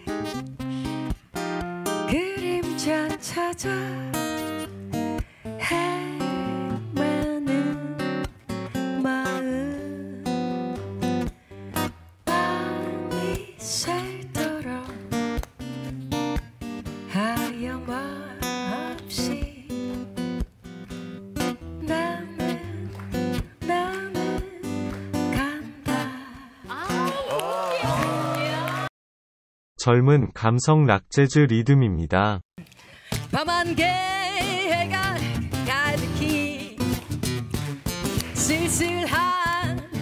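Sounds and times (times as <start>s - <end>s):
acoustic guitar bossa nova rhythm: 0.0s - 27.2s, 33.0s - 40.0s
woman singing a slow ballad: 2.1s - 4.6s, 5.6s - 10.5s, 12.3s - 15.1s, 17.1s - 20.0s, 21.8s - 26.9s, 33.2s - 36.8s, 38.4s - 40.0s.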